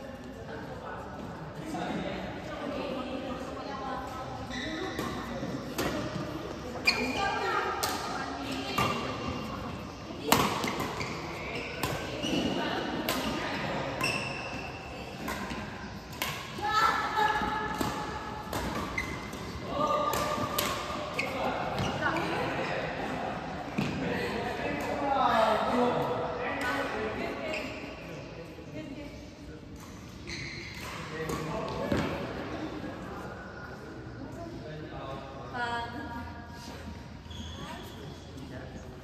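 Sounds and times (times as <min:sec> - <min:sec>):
shoes squeaking on court: 0:04.2 - 0:07.4, 0:08.5 - 0:16.1, 0:16.7 - 0:22.9, 0:29.8 - 0:32.2, 0:37.2 - 0:38.4
rackets hitting shuttlecock: 0:10.2 - 0:11.2, 0:17.3 - 0:22.0.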